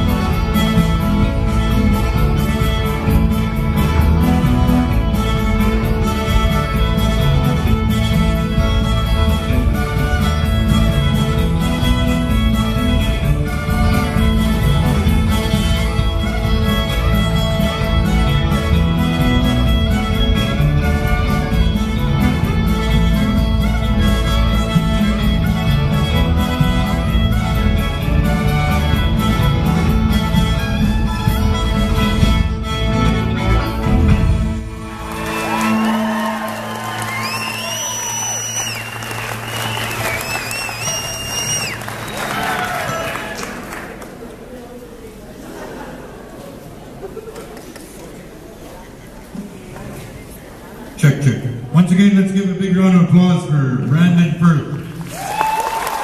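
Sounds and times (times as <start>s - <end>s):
fast fiddle tune: 0.0s - 42.2s
bass guitar: 0.0s - 43.2s
drums: 0.0s - 43.7s
audience applause and cheers: 34.6s - 44.4s, 54.9s - 56.0s.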